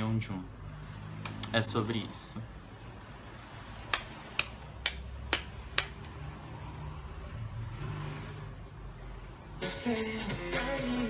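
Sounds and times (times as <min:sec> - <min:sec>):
sharp clicks: 0:03.9 - 0:06.2.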